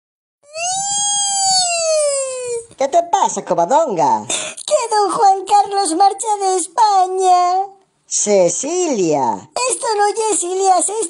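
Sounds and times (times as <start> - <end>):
toddler crying wail: 0.4 - 2.7.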